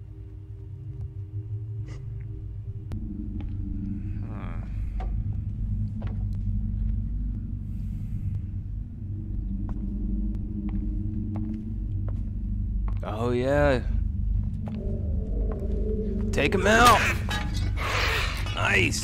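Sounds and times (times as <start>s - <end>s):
low rumbling drone: 0.0s - 19.0s.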